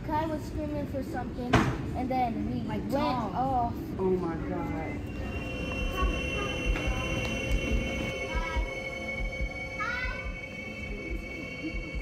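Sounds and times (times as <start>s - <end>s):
steady high-pitched tone: 4.5s - 12.0s.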